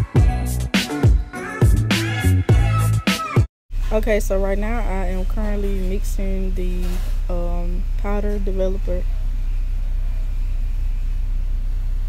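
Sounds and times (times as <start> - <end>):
loud low hum: 3.7 - 12.0.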